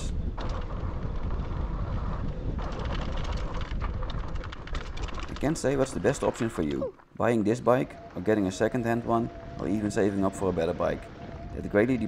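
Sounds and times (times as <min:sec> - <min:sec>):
tyres rolling on dirt trail: 0:00.0 - 0:12.0
wind buffeting microphone: 0:00.0 - 0:12.0
small clicks and rattles: 0:00.4 - 0:07.1.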